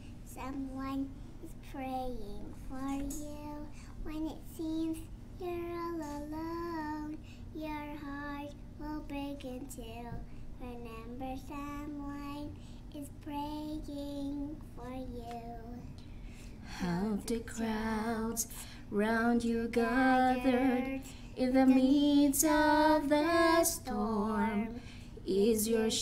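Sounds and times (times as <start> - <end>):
steady low hum: 0.0 - 26.0
girl singing into microphone: 16.7 - 26.0.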